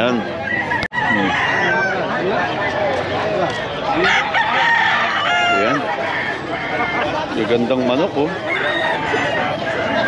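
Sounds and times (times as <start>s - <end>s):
roosters crowing: 0.0s - 10.0s.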